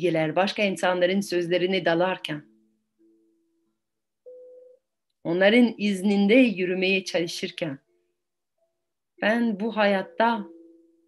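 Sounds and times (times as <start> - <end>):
faint steady tone: 2.4 - 5.3, 7.8 - 11.0.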